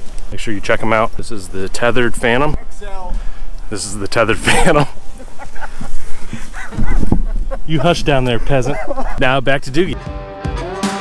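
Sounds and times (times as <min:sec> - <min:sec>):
dog-like barking yips: 0:06.1 - 0:09.3.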